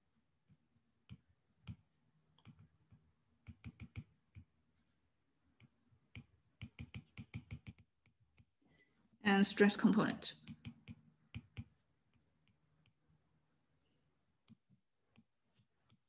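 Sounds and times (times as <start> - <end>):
stylus tapping on glass screen: 3.4 - 4.5, 6.1 - 8.1.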